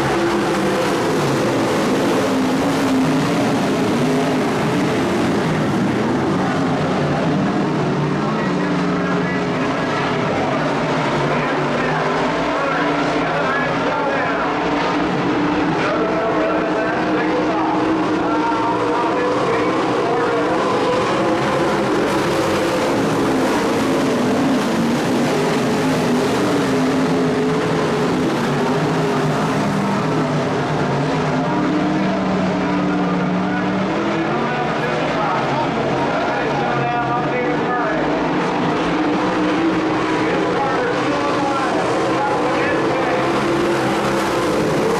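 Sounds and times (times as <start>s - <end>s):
race car engines: 0.0s - 44.9s.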